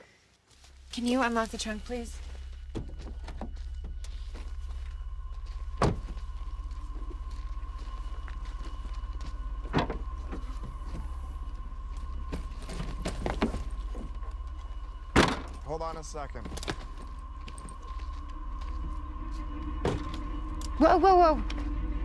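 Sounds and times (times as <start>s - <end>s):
low hum: 0.4s - 22.0s.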